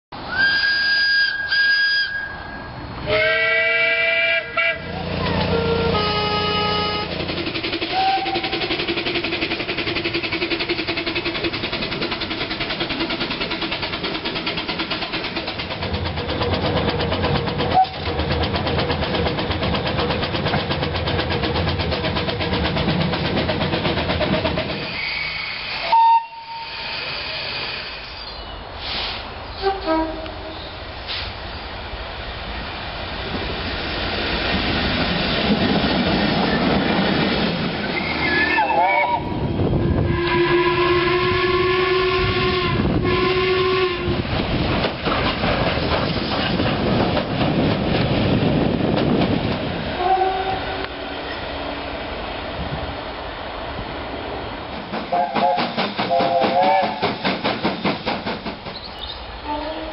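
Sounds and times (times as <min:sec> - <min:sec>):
steam locomotive whistle: 0:00.2 - 0:07.2, 0:07.9 - 0:08.7, 0:24.8 - 0:30.7, 0:38.0 - 0:44.2, 0:50.0 - 0:51.4, 0:55.1 - 0:57.2, 0:59.4 - 0:59.9
steam locomotive running: 0:00.2 - 0:59.9.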